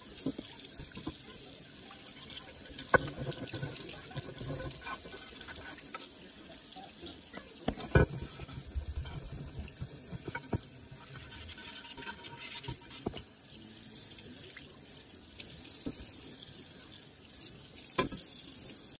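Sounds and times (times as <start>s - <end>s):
water running from tap into sink: 0.0s - 19.0s
dish knocking against sink: 2.8s - 5.7s, 7.7s - 13.2s.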